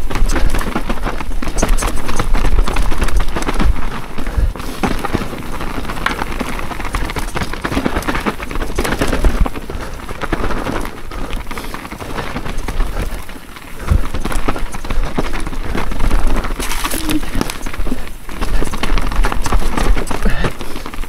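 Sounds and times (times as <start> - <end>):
bike knocks and rattles: 0.0 - 21.0
tyres crunching over stones: 0.0 - 21.0.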